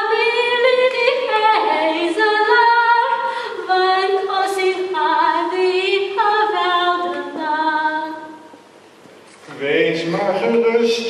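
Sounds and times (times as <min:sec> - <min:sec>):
woman singing unaccompanied: 0:00.0 - 0:08.5.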